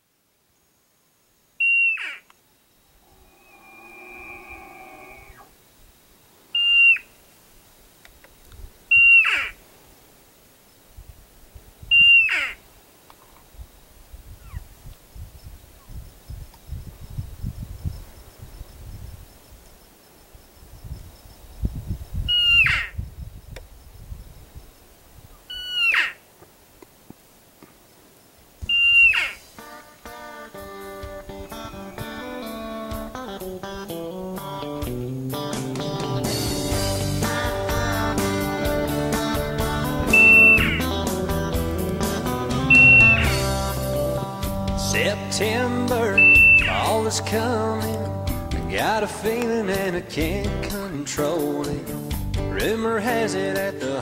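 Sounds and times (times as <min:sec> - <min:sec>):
elk bugling whistling calls: 0:01.6 - 0:02.3, 0:02.9 - 0:05.6, 0:06.5 - 0:07.2, 0:08.9 - 0:09.6, 0:11.9 - 0:12.6, 0:22.3 - 0:22.9, 0:25.4 - 0:26.2, 0:28.6 - 0:34.0, 0:36.7 - 0:47.3
lower stacked-tone elk call: 0:01.6 - 0:02.3, 0:02.9 - 0:05.6, 0:06.5 - 0:07.2, 0:08.9 - 0:09.6, 0:11.9 - 0:12.6, 0:28.7 - 0:33.8, 0:36.7 - 0:47.7
low rumbling noise: 0:02.9 - 0:05.7, 0:38.7 - 0:45.8.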